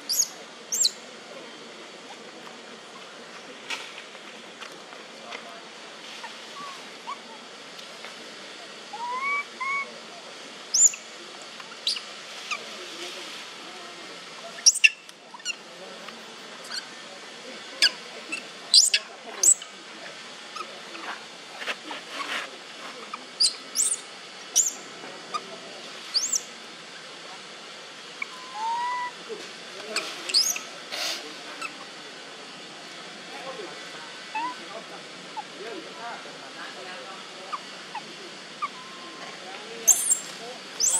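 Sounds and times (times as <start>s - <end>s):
monkey squeaks and chirps: 0.1s - 1.0s, 10.7s - 11.0s, 11.8s - 12.6s, 14.6s - 15.6s, 17.8s - 19.6s, 23.4s - 24.0s, 24.6s - 24.8s, 26.1s - 26.4s, 28.2s - 29.1s, 30.3s - 30.7s, 39.8s - 40.9s
monkey coos: 8.9s - 9.9s, 28.2s - 29.2s, 34.2s - 35.6s, 37.5s - 40.9s.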